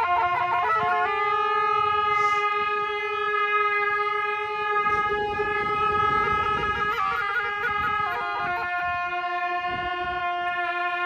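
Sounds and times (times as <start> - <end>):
double-reed oboes holding note: 0.0 - 11.0.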